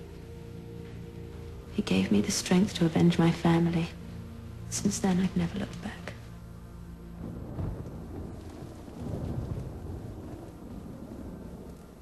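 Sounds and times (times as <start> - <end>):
low rolling rumble: 0.0 - 12.0.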